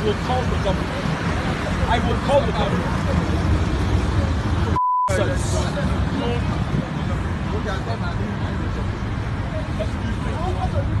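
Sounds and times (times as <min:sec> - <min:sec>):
faint voices talking: 0:00.0 - 0:11.0
road traffic rumble: 0:00.0 - 0:11.0.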